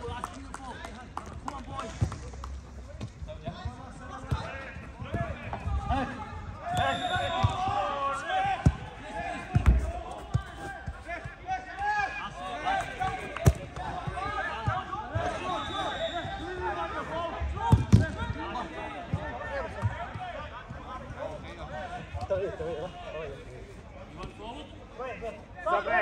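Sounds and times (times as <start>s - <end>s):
players shouting: 4.0s - 23.2s, 25.6s - 26.0s
football being kicked: 8.5s - 11.4s, 12.8s - 15.3s, 17.7s - 18.1s.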